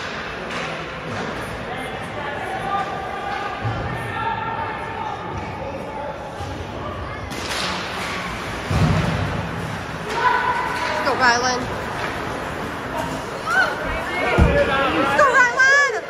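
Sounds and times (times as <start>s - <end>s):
indistinct chatter: 0.0s - 16.0s.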